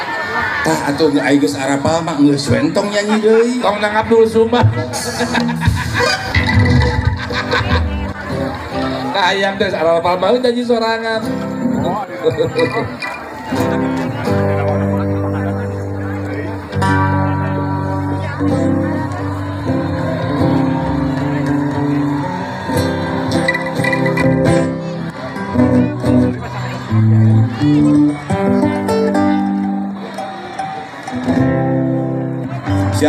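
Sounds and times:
live music held chords: 0:00.0 - 0:33.0.

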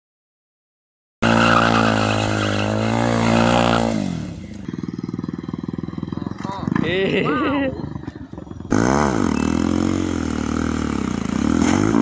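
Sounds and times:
motorcycle engine revving: 0:01.2 - 0:12.0.

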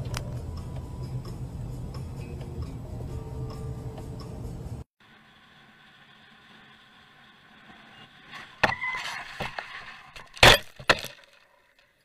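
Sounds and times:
low cabin hum: 0:00.0 - 0:08.3.

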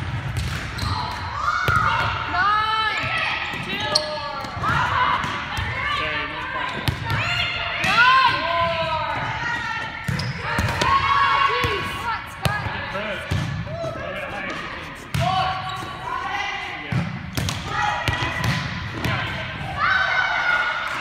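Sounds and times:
young players chattering: 0:02.2 - 0:20.9.

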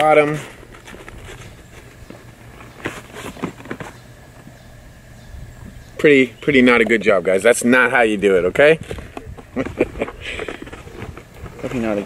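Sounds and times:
paper rustling in cardboard box: 0:00.6 - 0:04.0.

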